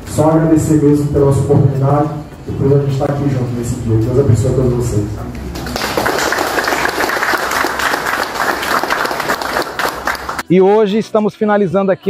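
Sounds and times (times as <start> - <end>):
audience applause: 5.5 - 10.4.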